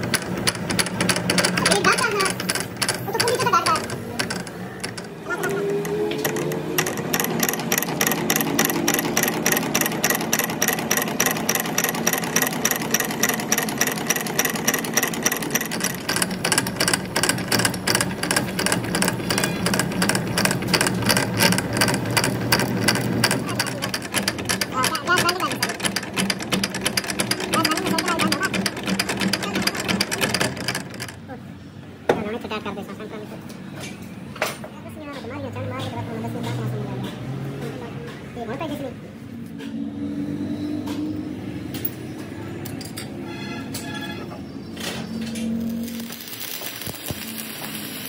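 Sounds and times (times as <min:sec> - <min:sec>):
metal lathe clattering: 0:00.0 - 0:31.2.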